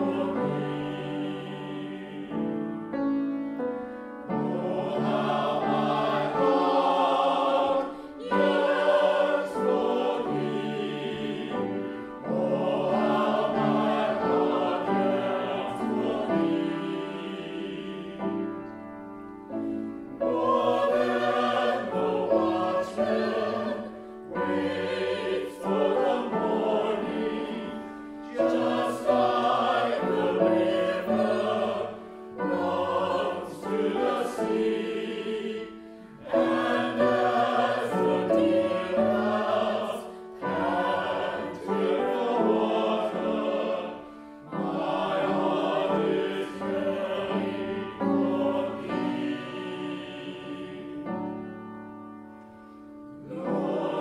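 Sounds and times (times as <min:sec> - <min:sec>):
church choir singing: 0:00.0 - 0:54.0.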